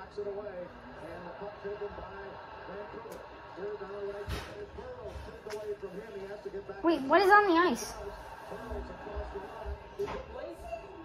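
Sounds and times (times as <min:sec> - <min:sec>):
faint tv sports commentary: 0:00.0 - 0:11.0.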